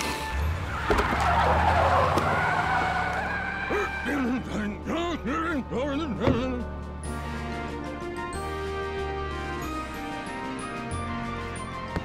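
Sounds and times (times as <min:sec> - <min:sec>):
cartoon tires screeching: 0:00.0 - 0:04.6.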